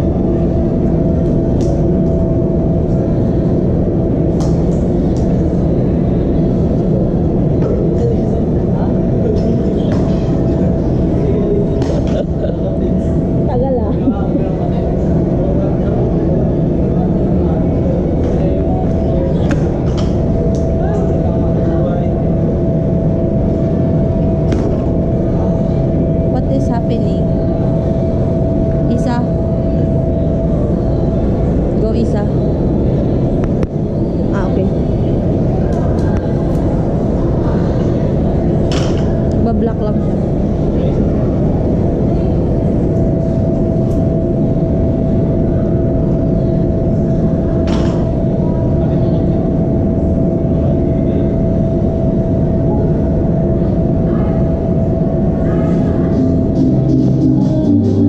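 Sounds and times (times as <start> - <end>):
background din with voices: 0.0 - 58.0.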